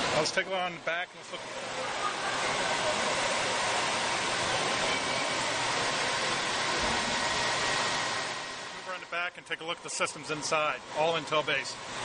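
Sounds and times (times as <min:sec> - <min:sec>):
server cooling fans rushing: 0:00.0 - 0:12.0.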